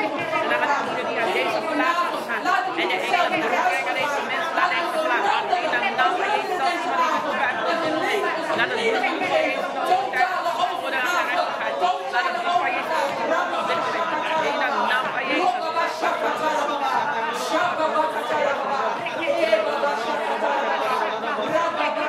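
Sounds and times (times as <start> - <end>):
babble of overlapping voices: 0.0 - 22.0.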